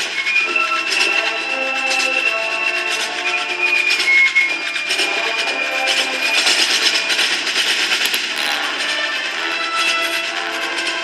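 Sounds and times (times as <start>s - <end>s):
rapid drum and percussion strokes: 5.8s - 11.0s
wind instruments holding notes: 8.1s - 11.0s.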